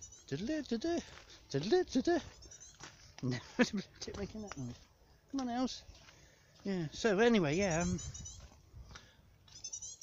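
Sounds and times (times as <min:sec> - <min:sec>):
bird calling high thin notes: 0:00.0 - 0:00.6, 0:02.3 - 0:02.8, 0:07.6 - 0:08.5, 0:09.5 - 0:10.0.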